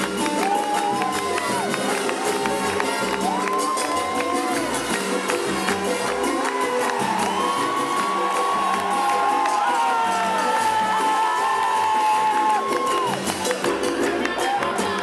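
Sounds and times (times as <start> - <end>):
crowd cheering: 0.0 - 15.0
live band music: 0.0 - 15.0.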